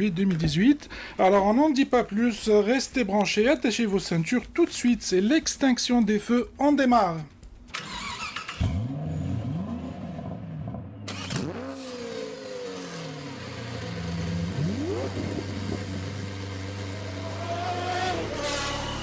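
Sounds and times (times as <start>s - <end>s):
racing car engine accelerating: 7.9s - 19.0s.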